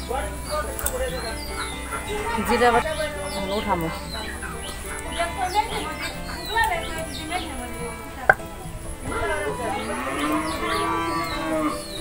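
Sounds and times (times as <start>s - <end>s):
cow mooing: 1.5s - 8.4s, 9.0s - 12.0s.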